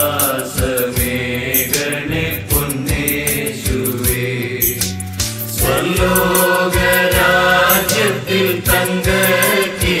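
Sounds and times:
devotional song with chant-like voice: 0.0 - 10.0
steady beat: 0.0 - 10.0.

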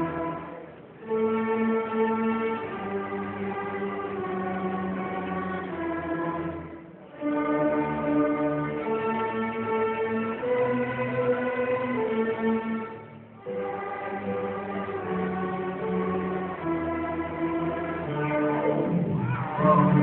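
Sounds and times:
string orchestra bowed chords: 0.0 - 20.0.

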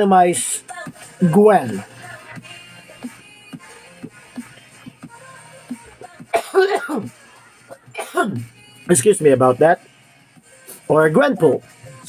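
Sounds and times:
soft background music: 0.0 - 12.0
man clearing his throat: 6.3 - 7.1, 7.7 - 8.5
man coughing: 6.3 - 8.5.

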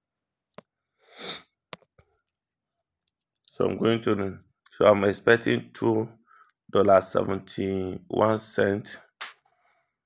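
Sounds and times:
person sniffing: 1.0 - 1.6.

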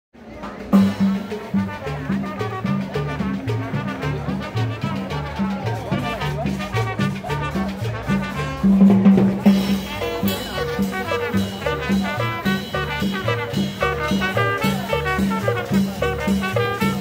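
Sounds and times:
brass band music with drums: 0.2 - 17.0.

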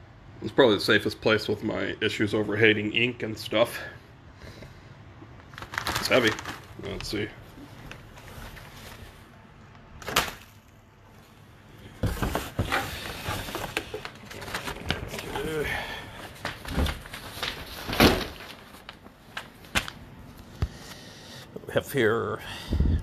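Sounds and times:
paper and plastic rustling: 5.3 - 9.4, 10.0 - 20.0.

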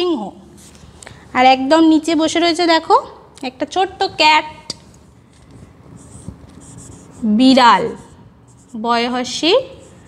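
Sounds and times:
marker pen on whiteboard: 4.7 - 10.0.

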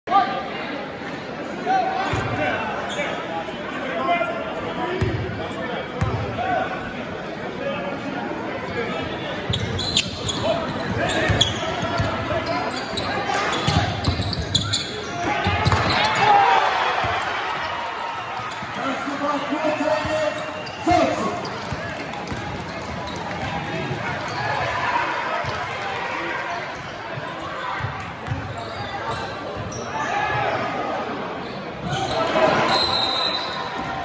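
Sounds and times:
crowd voices and chatter: 0.0 - 34.0.

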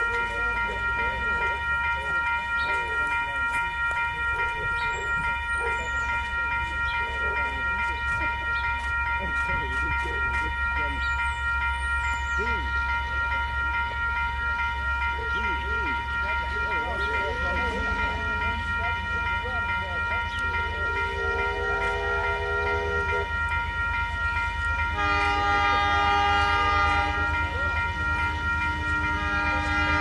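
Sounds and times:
crowd voices: 0.0 - 23.2
steady high tone: 0.0 - 30.0
steam locomotive exhaust beating: 0.0 - 30.0.

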